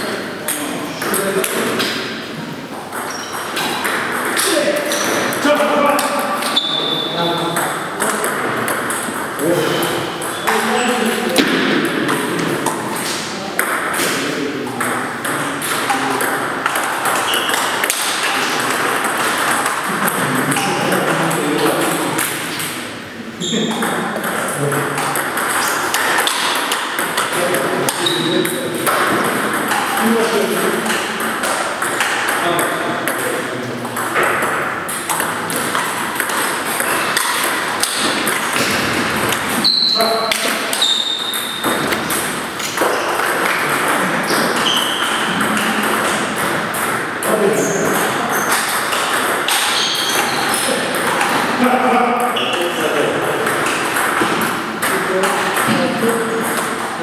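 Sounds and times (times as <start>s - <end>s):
people talking: 0.0s - 2.7s, 3.6s - 22.6s, 23.2s - 34.5s, 37.9s - 41.1s, 42.8s - 49.0s, 49.7s - 57.0s
table tennis ball clicking: 24.1s - 39.6s.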